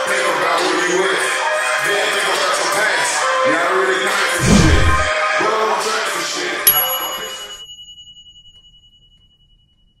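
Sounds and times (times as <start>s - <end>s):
high bell ding: 6.7s - 10.0s.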